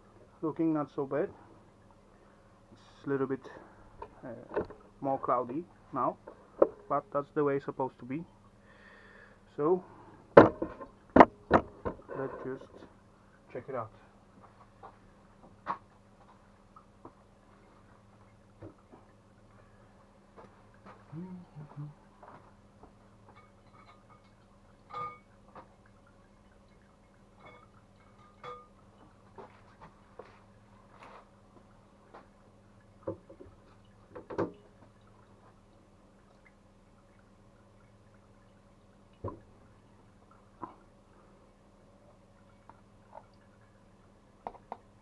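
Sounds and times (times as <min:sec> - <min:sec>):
steady low hum: 0:00.0 - 0:45.0
water dripping: 0:00.0 - 0:45.0
glass jar clinks and knocks: 0:23.3 - 0:25.3, 0:27.4 - 0:28.8.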